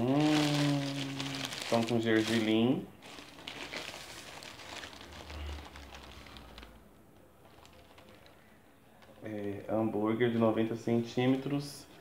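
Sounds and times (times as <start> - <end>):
paper wrapper crinkling: 0.0 - 12.0.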